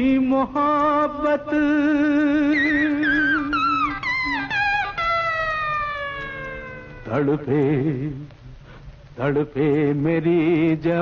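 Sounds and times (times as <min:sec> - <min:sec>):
long gliding instrumental note: 0:03.5 - 0:08.0.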